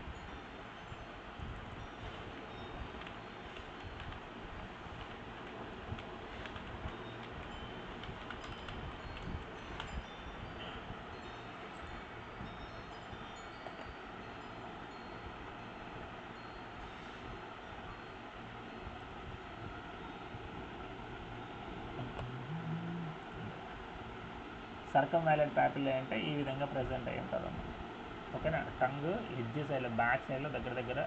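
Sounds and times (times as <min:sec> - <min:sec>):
room hiss: 0:00.0 - 0:31.0
keyboard keystrokes: 0:05.0 - 0:07.4, 0:08.0 - 0:09.9.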